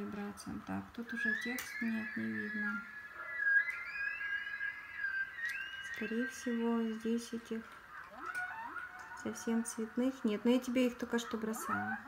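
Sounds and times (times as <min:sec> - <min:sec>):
high thin wavering whistle: 0:01.1 - 0:07.4.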